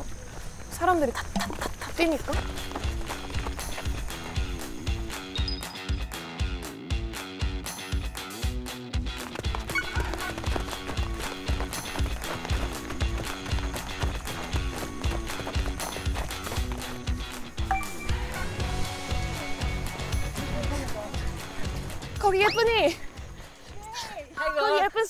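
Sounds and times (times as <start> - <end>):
runners' footsteps on asphalt: 0.0 - 5.9, 8.9 - 17.7, 18.6 - 24.4
music with steady beat: 2.4 - 23.6.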